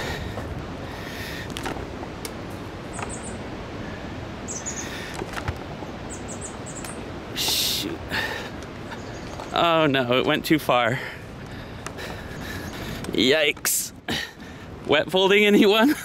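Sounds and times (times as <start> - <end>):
birds chirping: 0.0 - 16.0
steady rushing background: 0.0 - 16.0.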